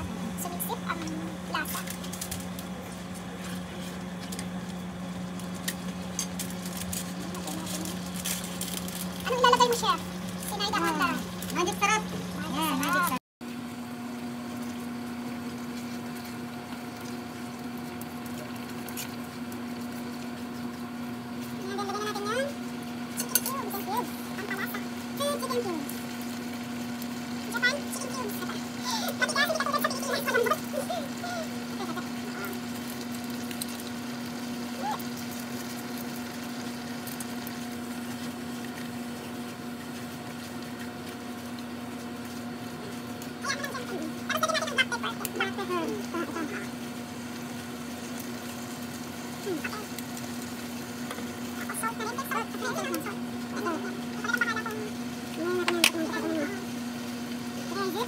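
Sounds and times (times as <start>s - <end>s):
electric hum with low whine: 0.0s - 58.0s
fan hiss: 0.0s - 58.0s
leaves sizzling in a pan: 0.3s - 58.0s.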